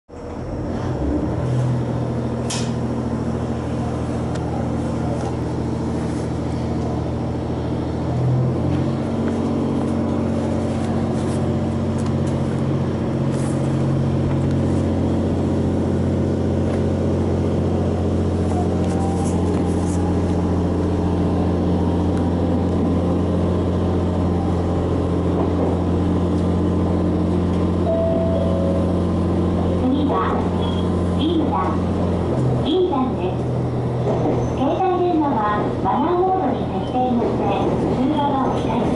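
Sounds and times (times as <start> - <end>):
diesel railcar engine humming: 0.1 - 38.9.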